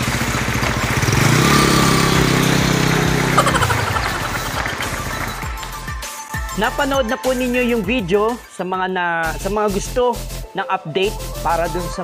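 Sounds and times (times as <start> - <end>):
engine running: 0.0 - 6.1.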